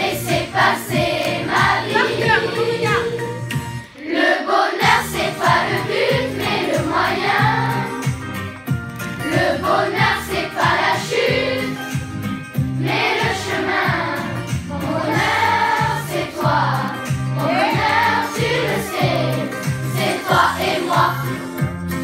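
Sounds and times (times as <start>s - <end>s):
children's choir singing: 0.0s - 8.1s, 9.2s - 11.9s, 12.8s - 21.5s.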